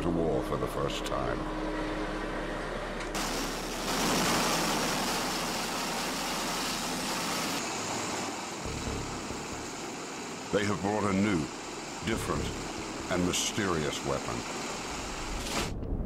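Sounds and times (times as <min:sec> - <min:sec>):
aircraft engines and rotors running: 0:00.0 - 0:16.0.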